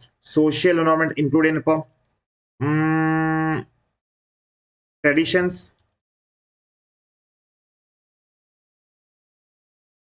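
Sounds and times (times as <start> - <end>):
man holding drawn-out vowel: 2.6 - 3.8.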